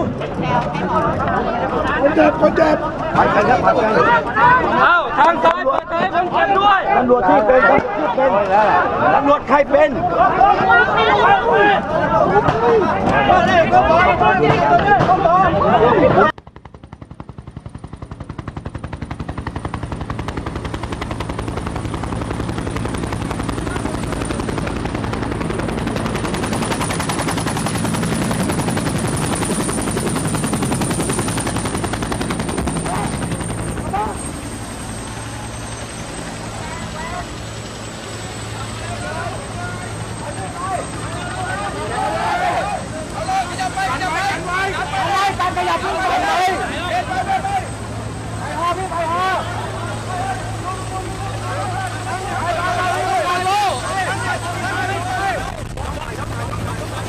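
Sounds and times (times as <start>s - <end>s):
people's voices: 0.0s - 16.4s, 20.7s - 57.0s
helicopter rotor beating: 0.0s - 57.0s.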